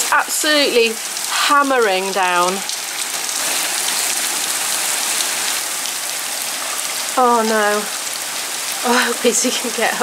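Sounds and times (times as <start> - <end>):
heavy rain and hail on road: 0.0 - 10.0.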